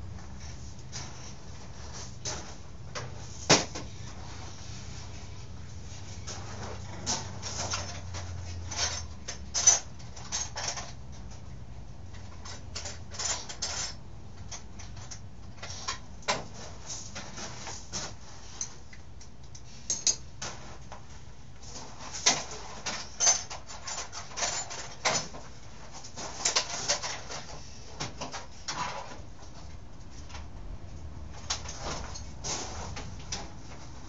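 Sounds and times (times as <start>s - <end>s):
tools and small parts clinking: 6.3s - 11.5s, 12.1s - 17.4s, 18.5s - 20.3s, 21.8s - 29.6s, 31.3s - 33.6s.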